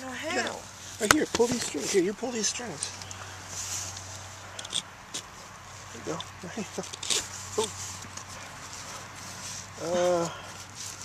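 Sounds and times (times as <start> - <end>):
nylon webbing rustling: 0.0 - 11.0
steady low hum: 0.0 - 11.0
buckle clicks: 4.6 - 5.3.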